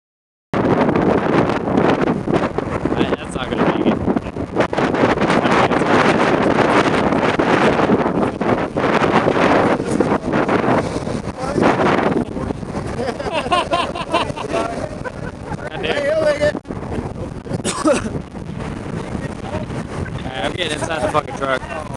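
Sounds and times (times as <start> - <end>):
wind buffeting microphone: 0.6 - 21.9
person laughing: 12.9 - 16.0.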